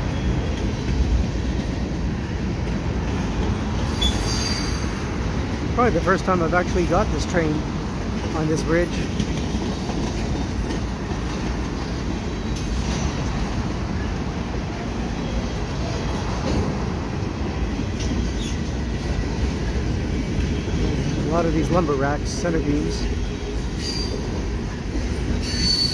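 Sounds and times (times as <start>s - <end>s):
train wheels rumbling on rails: 0.0s - 25.9s.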